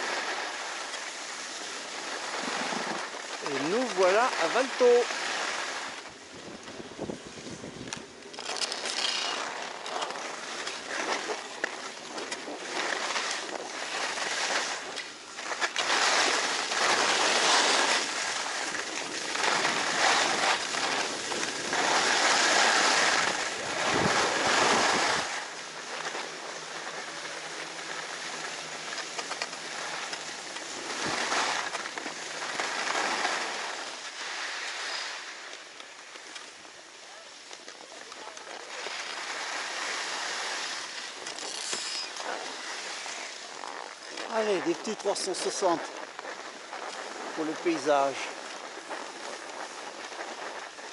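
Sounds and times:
skis scraping over snow: 0.0 - 50.9.

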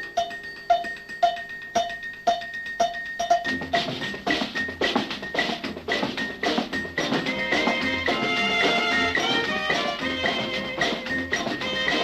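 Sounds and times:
ringing percussion beat: 0.0 - 12.0
band instruments: 3.6 - 12.0.

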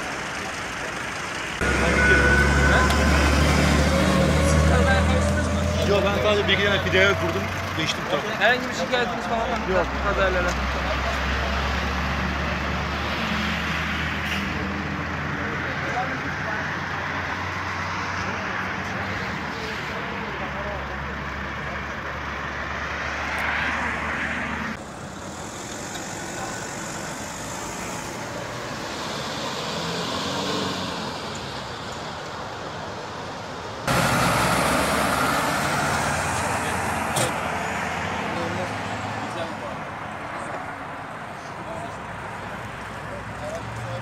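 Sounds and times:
road traffic: 0.0 - 44.0.

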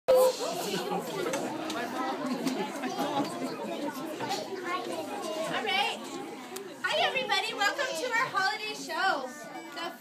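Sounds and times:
chatter of many voices: 0.1 - 10.0.

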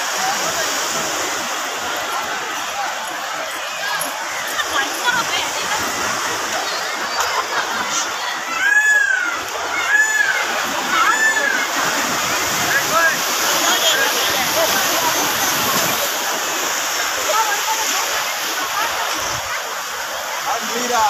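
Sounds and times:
crowd babble and shouting: 0.0 - 21.0
surf washing onto beach: 0.0 - 21.0.

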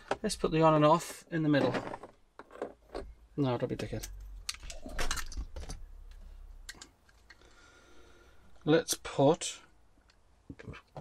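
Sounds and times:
plastic parts clicking: 3.7 - 5.8.

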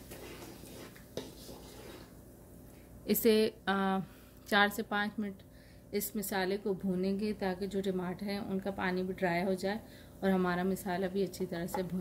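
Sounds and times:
wooden spatula scraping pan: 0.0 - 2.2
masala sizzling in a pan: 0.0 - 2.4.

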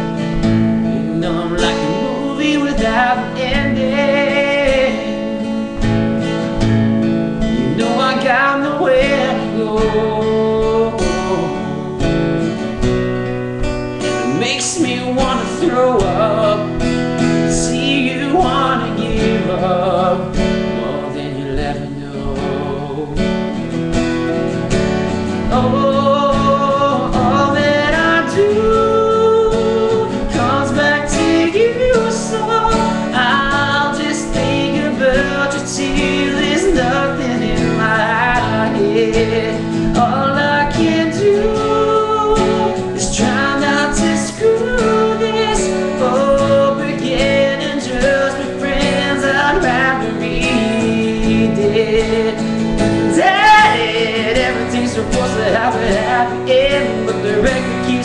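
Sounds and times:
acoustic guitar strumming: 0.0 - 58.0
man singing: 0.0 - 58.0.

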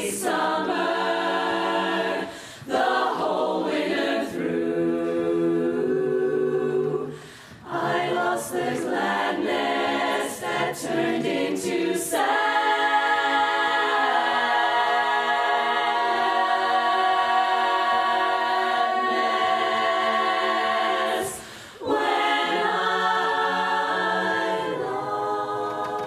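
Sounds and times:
women's chorus singing a cappella: 0.0 - 26.0
singers breathing: 2.2 - 2.7, 7.1 - 7.6, 21.3 - 21.9.

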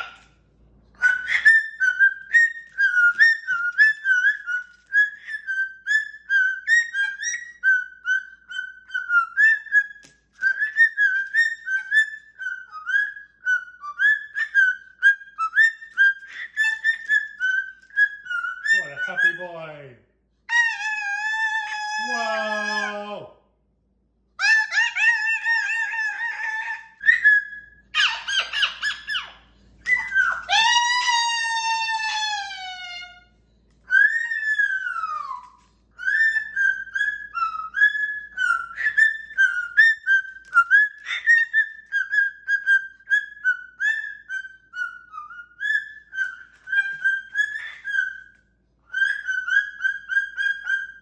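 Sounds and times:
cockatoo whistling: 0.9 - 19.7, 24.4 - 51.0.

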